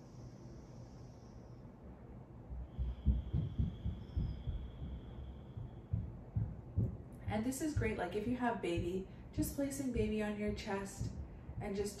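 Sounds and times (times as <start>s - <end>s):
low muffled thumps: 2.5s - 12.0s.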